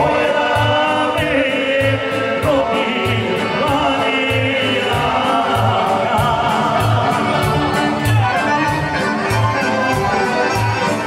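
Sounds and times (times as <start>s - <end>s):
accordions: 0.0s - 11.0s
man singing through speakers: 0.0s - 11.0s.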